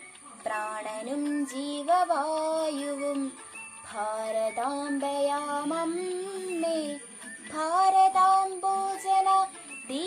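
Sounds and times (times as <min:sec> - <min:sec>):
girl singing: 0:00.4 - 0:10.0.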